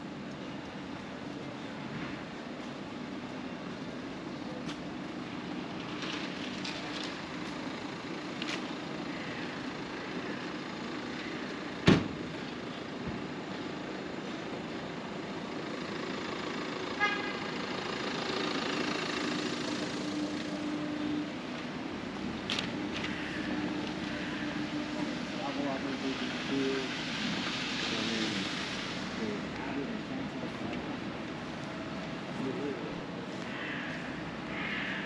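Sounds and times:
city street traffic: 0.0 - 35.0
car horn toot: 17.0 - 17.5.

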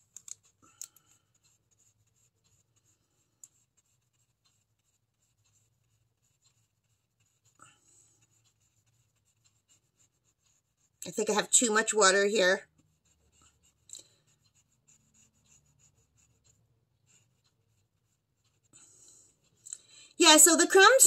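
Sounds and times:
paintbrush tapping and brushing paper: 0.0 - 21.0.

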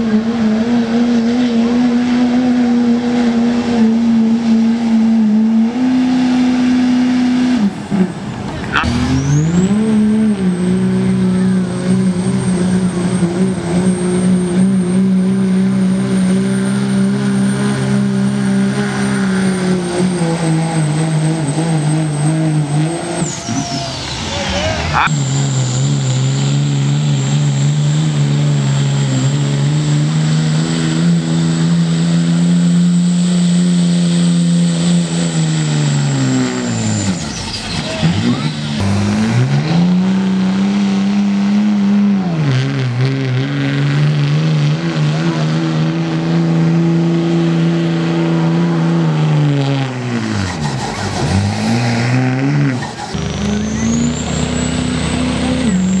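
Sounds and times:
diesel truck engine at high revs: 0.0 - 56.0
turbo whistle: 53.2 - 56.0.

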